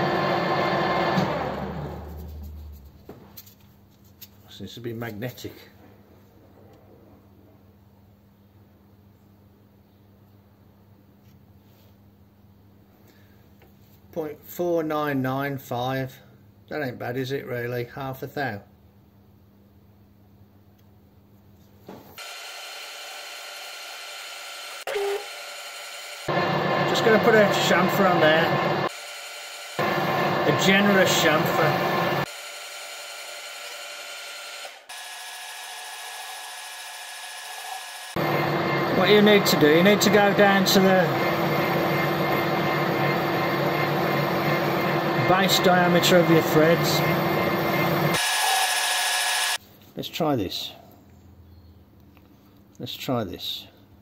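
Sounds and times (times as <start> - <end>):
metal lathe motor whining: 22.2 - 49.6.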